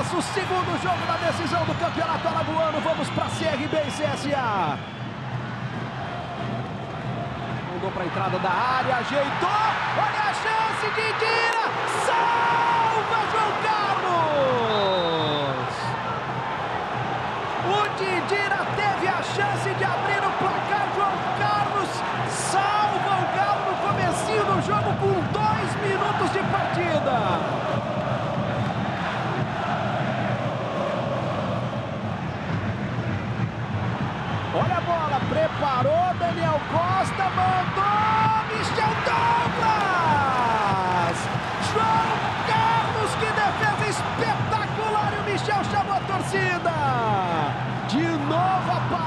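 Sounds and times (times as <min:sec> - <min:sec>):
stadium crowd singing and shouting: 0:09.0 - 0:34.5, 0:36.6 - 0:49.0.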